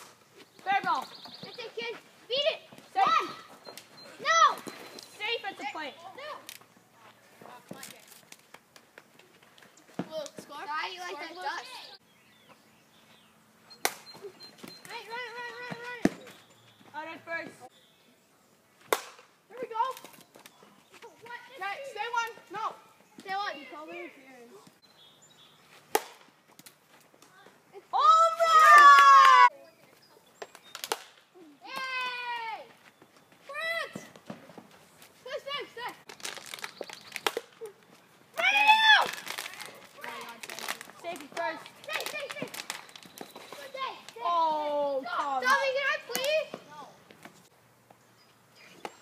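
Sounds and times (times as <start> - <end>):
boys shouting: 1.8 - 4.7, 27.8 - 29.5, 38.4 - 40.4
plastic bat hitting ball: 18.9 - 19.3, 25.9 - 26.3, 30.5 - 31.2.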